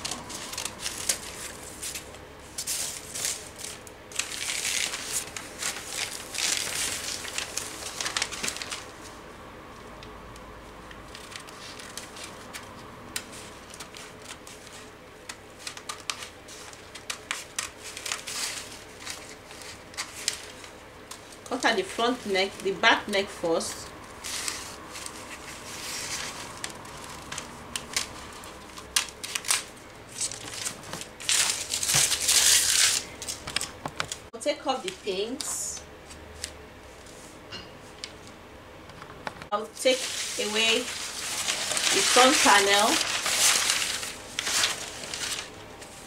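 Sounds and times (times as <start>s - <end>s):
paper rustling and crinkling: 0.0s - 9.2s, 10.8s - 22.8s, 23.7s - 37.4s, 39.8s - 46.0s.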